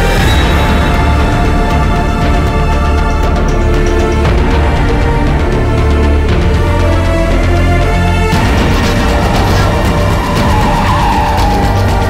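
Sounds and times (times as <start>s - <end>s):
driving action music: 0.0s - 12.0s.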